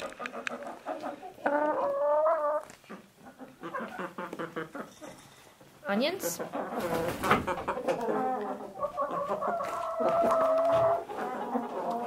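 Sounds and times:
hens clucking: 0.0s - 5.2s, 5.8s - 12.0s.

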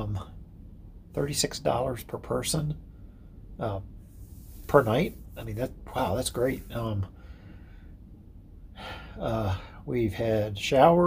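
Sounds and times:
man breathing: 2.9s - 5.4s, 6.5s - 8.1s, 8.7s - 9.8s.

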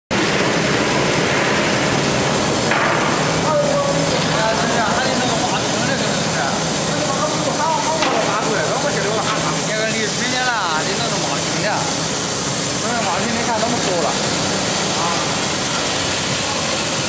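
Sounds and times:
machinery running: 0.1s - 17.0s
voices talking: 3.3s - 17.0s.

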